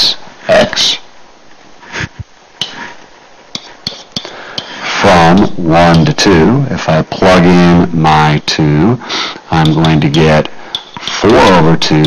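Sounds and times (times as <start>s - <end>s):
stylus pen tip tapping: 9.6s - 11.2s.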